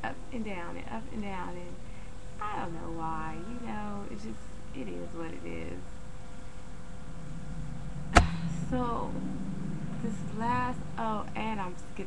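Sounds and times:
person speaking: 0:02.4 - 0:05.8
sharp click: 0:08.2 - 0:08.5.

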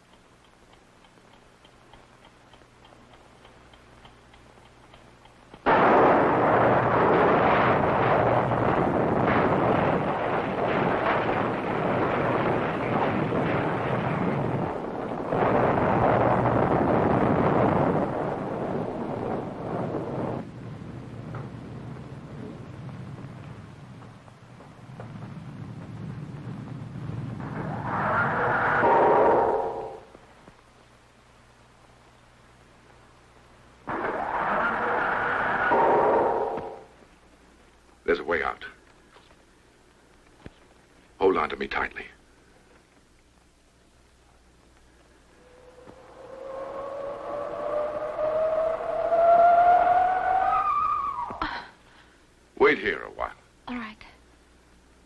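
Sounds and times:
noisy roar and rumble: 0:00.0 - 0:38.0, 0:43.0 - 0:53.0
faint hum: 0:00.0 - 0:55.0
bomb explosion blast: 0:05.6 - 0:30.2, 0:33.8 - 0:37.0.

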